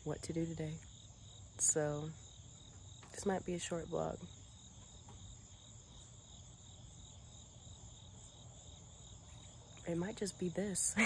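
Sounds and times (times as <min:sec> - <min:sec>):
insects trilling: 0:00.1 - 0:11.0.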